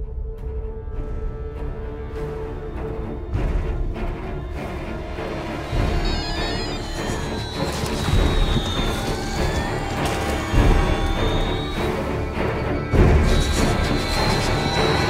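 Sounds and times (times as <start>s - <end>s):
tense film music: 0.0s - 15.0s
high sliding tones: 5.8s - 12.2s.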